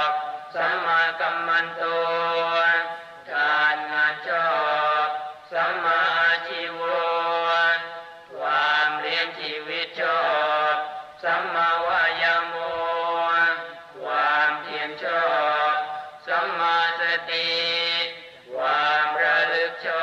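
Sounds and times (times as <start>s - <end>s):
person chanting melodically: 0.0s - 20.0s.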